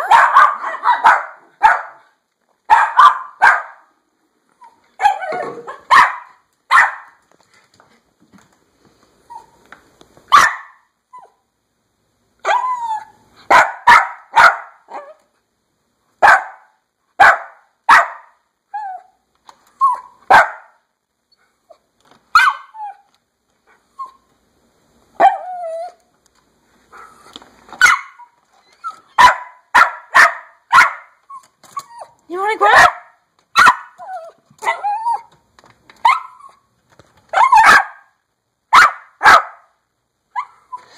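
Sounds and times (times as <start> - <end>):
dog whining: 12.4 - 13.2, 19.8 - 20.2, 25.2 - 26.0, 28.0 - 29.2, 31.2 - 32.2, 34.0 - 35.4
small dog yapping: 27.8 - 32.2, 32.8 - 35.4, 37.3 - 38.1.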